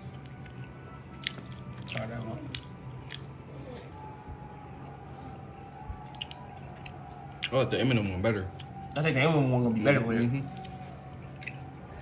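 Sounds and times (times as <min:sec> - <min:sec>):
person chewing soft cookie: 0:00.0 - 0:04.1, 0:05.9 - 0:09.2, 0:10.4 - 0:12.0.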